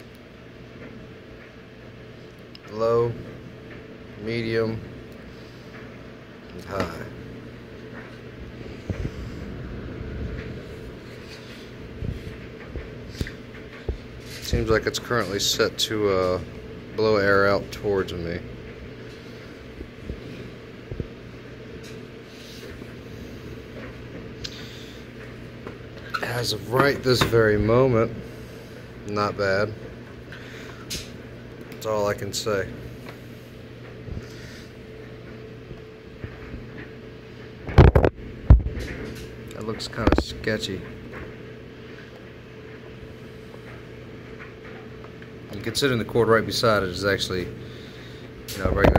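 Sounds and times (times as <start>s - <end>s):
cooling fans humming: 0.0s - 48.9s.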